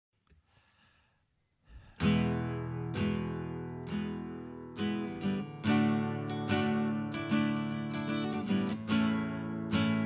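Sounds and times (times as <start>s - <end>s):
faint intake of breath: 0.4s - 2.1s
acoustic guitar strum: 2.0s - 10.0s.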